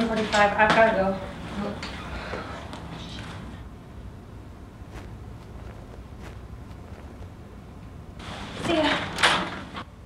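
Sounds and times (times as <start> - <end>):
low room rumble: 0.0 - 10.0
soft footsteps: 4.6 - 8.0
backpack rustling: 4.9 - 7.3.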